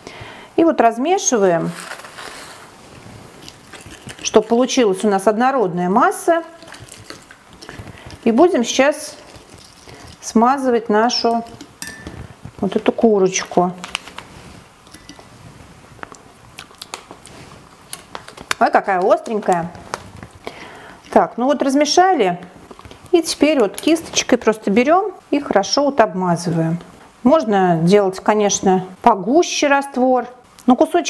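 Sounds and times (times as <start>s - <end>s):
steady background hiss: 0.0s - 31.0s
plastic packet crinkling: 1.2s - 5.3s, 6.0s - 15.3s, 16.0s - 20.5s
stirring paste in glass bowl: 6.0s - 12.8s, 14.9s - 15.3s.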